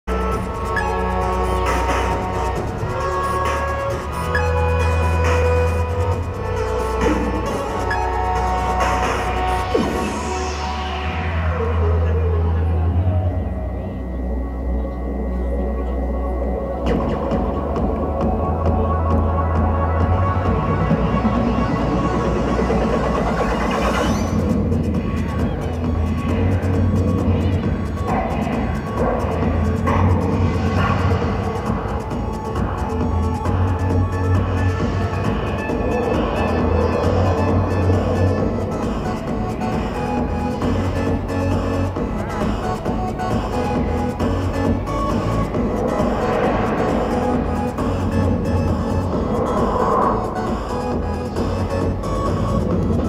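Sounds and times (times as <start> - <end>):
heavy bass: 0.0 - 53.0
live concert music over pa: 0.1 - 53.0
high synth tone: 42.0 - 52.6.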